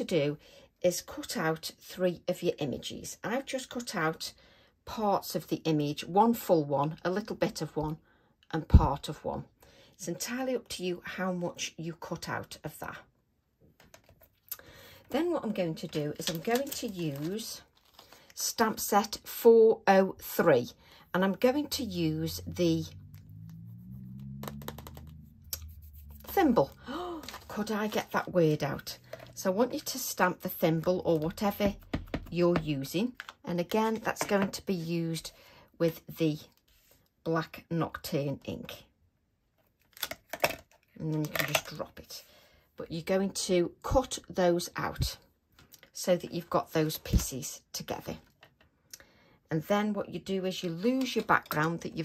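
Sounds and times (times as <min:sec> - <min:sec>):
paper card clicking and tapping: 0:24.4 - 0:26.3.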